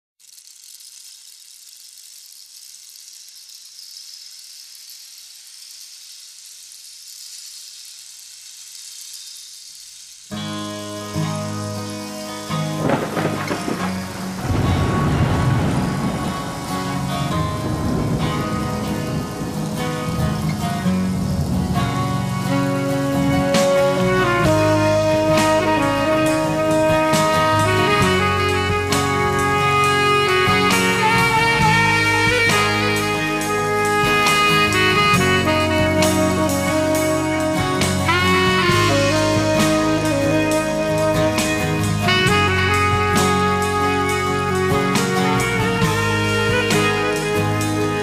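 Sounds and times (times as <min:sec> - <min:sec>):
rain hissing: 0:00.2 - 0:48.0
blues-rock band playing: 0:10.4 - 0:48.0.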